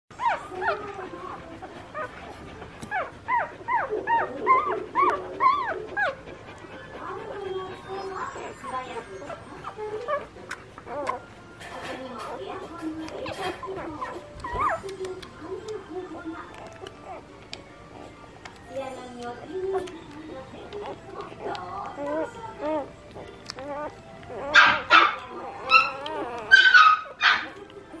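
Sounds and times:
dog barking and yelping: 0.1 - 11.3, 12.2 - 14.9, 20.8 - 27.6
puppies squeaking and whimpering: 0.1 - 28.0.

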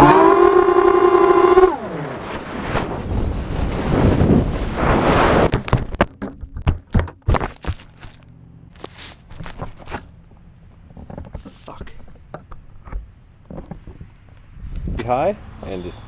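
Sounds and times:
drone motors whining: 0.0 - 2.4
drone crashing through branches: 0.0 - 6.0
wind noise: 0.0 - 7.4, 12.8 - 15.8.

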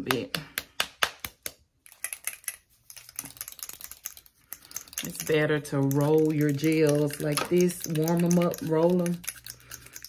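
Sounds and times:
nail polish bottle shaking clicks: 1.9 - 10.0.

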